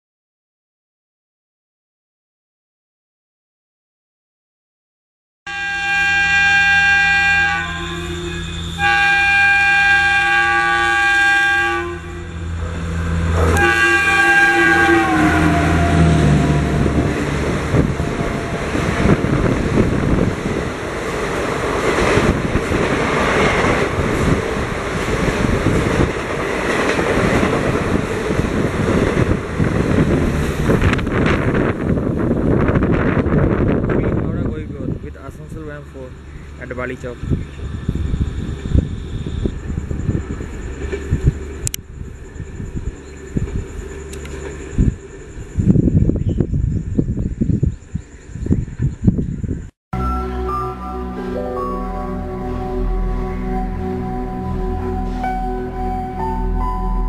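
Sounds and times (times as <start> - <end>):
locomotive horn blasts: 5.5 - 19.3, 50.0 - 57.0
train wheels clattering on rails: 16.8 - 31.9.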